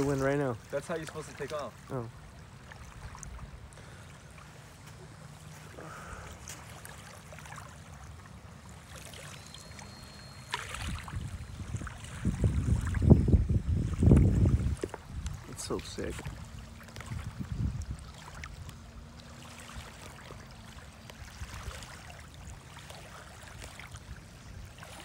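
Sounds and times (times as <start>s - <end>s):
wind buffeting microphone: 10.7s - 19.0s.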